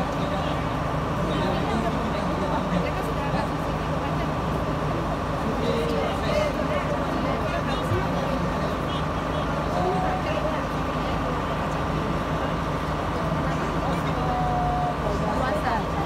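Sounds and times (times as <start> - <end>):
crowd talking: 0.0 - 16.0.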